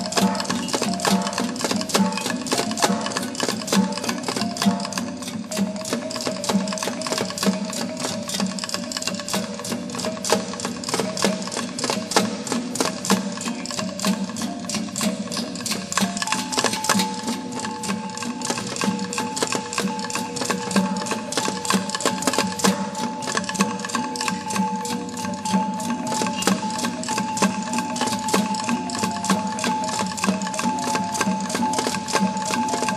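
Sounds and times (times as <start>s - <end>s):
fast percussion strikes: 0.0s - 32.9s.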